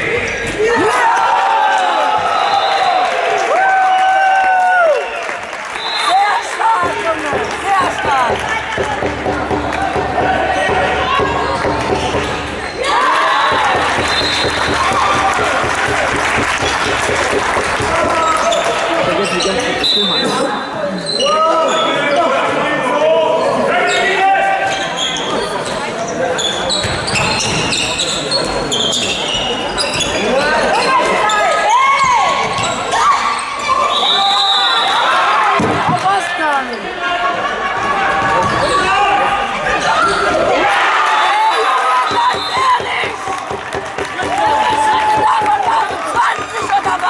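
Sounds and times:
ball bouncing on floor: 6.8s - 12.5s, 13.5s - 18.2s.

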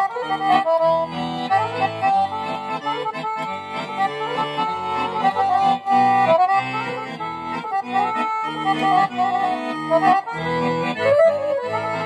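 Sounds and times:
accordion folk dance tune: 0.0s - 12.0s.

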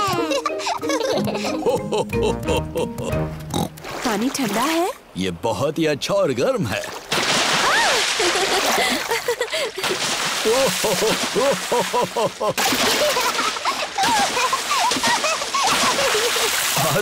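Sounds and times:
voices laughing: 0.0s - 3.1s, 8.2s - 9.8s, 10.4s - 17.0s
splashing in shallow water: 3.5s - 5.0s, 6.7s - 17.0s.

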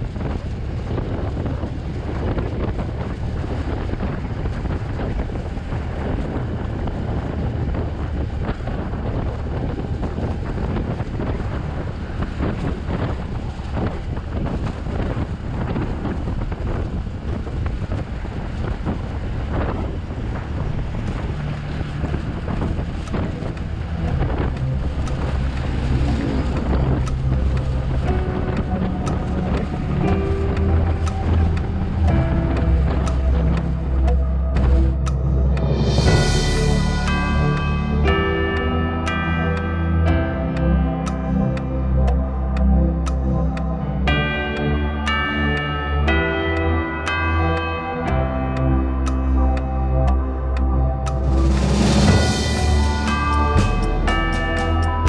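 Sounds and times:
wind buffeting microphone: 0.0s - 55.0s
music with steady notes: 22.6s - 55.0s.

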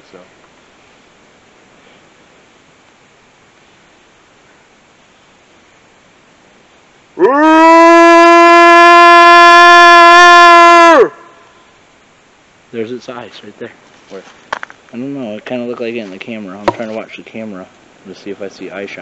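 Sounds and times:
loud horn-like call: 7.2s - 11.6s.

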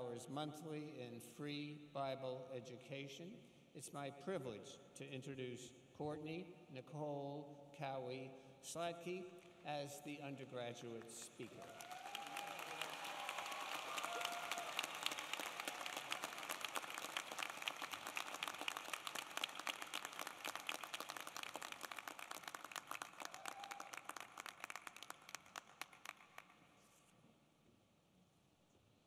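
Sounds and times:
crowd applauding: 11.2s - 26.7s.

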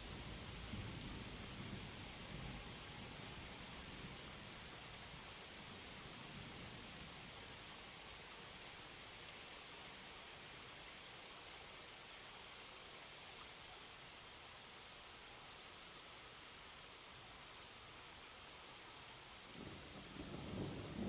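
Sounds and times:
faint hiss: 0.0s - 21.0s.

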